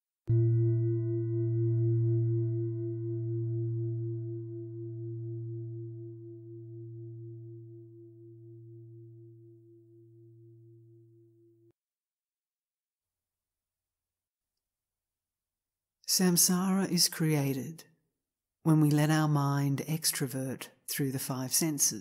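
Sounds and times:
meditation bell ringing: 0.3s - 11.6s.

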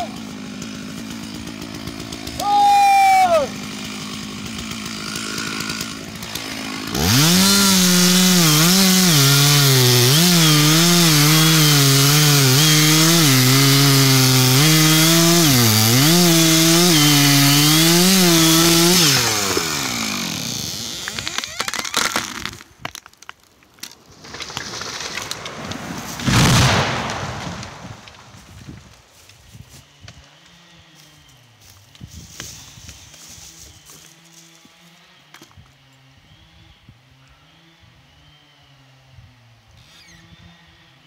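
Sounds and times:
chainsaw cutting through tree: 0.0s - 23.0s, 24.2s - 41.0s
wood cracking: 3.6s - 29.4s
tree crashing to the ground: 24.1s - 29.1s.

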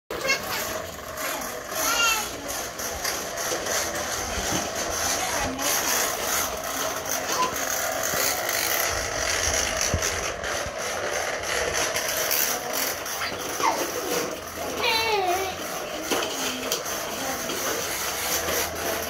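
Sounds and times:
plastic toy mowers clattering: 0.1s - 19.0s.

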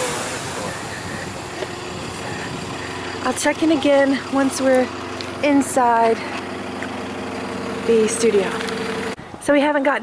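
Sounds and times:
bus engine running: 0.0s - 10.0s.

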